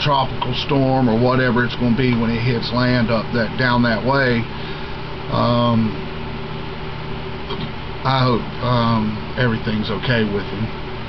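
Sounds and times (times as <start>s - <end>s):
electric fan whirring: 0.0s - 11.0s.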